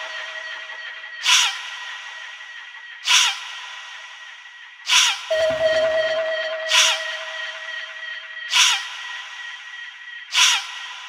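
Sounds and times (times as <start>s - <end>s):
sustained high synth tone: 0.0s - 2.4s, 5.3s - 10.0s.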